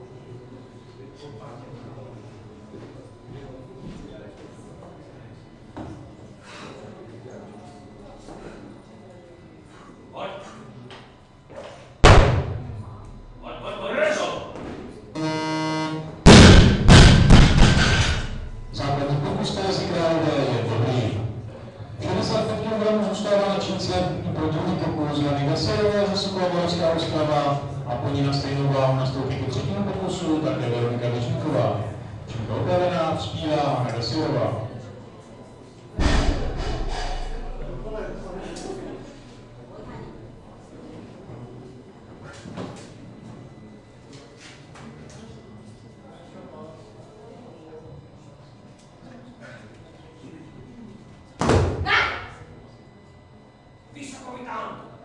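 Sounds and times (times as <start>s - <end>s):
heavy booming thump: 12.0s - 13.7s, 16.3s - 19.0s, 36.0s - 38.3s
buzzer signal: 15.1s - 19.2s
barbell crashing and bouncing: 16.3s - 18.8s.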